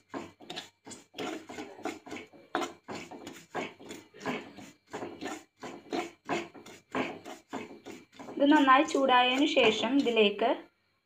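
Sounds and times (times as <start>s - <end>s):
metal spoon scraping pan: 0.0s - 10.5s.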